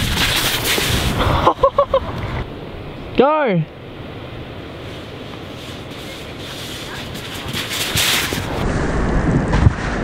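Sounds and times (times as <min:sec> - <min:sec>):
wind buffeting microphone: 0:00.0 - 0:02.7, 0:04.0 - 0:10.0.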